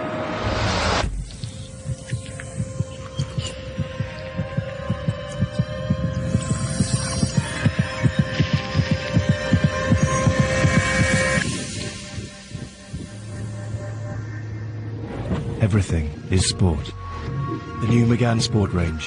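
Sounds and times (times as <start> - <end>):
steady droning tone: 0.0 - 19.0
low thudding heartbeat pulse: 1.0 - 14.2.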